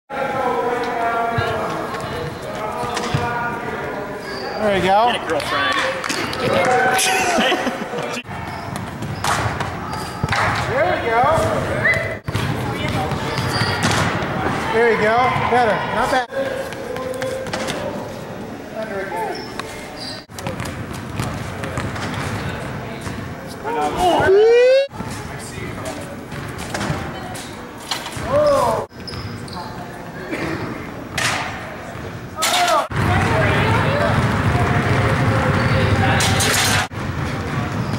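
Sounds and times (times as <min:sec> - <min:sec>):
voices echoing in a hall: 0:00.1 - 0:37.9
person calling out: 0:23.7 - 0:24.9.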